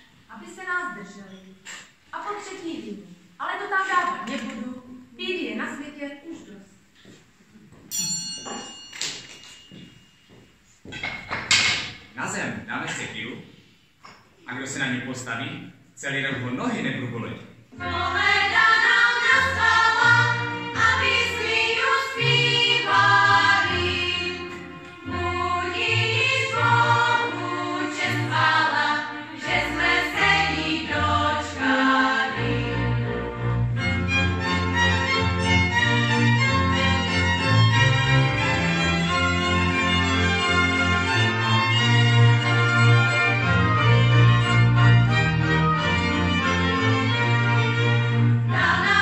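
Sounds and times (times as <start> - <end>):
bright metallic ring: 7.9 - 11.2
women singing folk song: 17.8 - 33.2, 48.5 - 49.0.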